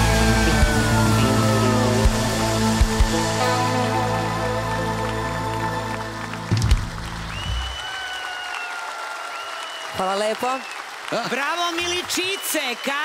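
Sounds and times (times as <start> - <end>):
audience applause: 0.0 - 13.0.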